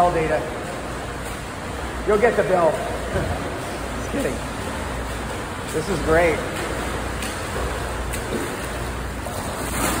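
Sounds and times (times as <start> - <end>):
pool water washing and splashing: 0.0 - 10.0
swimmer splashing: 0.0 - 10.0.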